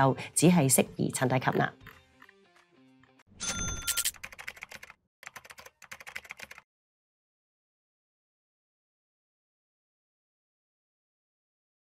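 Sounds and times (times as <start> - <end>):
thump with bell-like ding: 3.4 - 4.0
keyboard typing clicks: 3.5 - 6.6.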